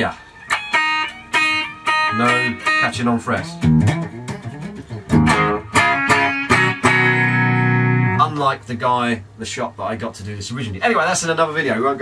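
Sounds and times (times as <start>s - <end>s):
electric guitar notes ringing: 0.2s - 8.3s.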